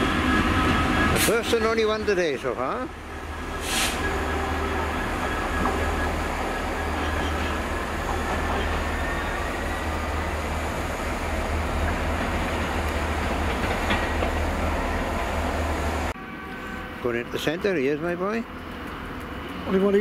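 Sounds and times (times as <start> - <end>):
diesel locomotive engine drone: 0.0 - 20.0.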